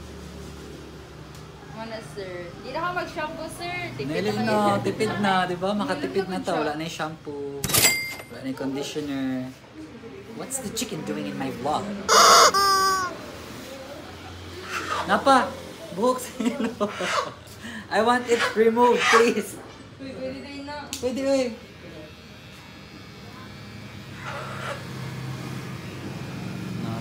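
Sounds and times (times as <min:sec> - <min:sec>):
electric hair clipper buzzing: 0:12.1 - 0:13.2, 0:21.0 - 0:27.0
chicken squawking: 0:12.1 - 0:13.3.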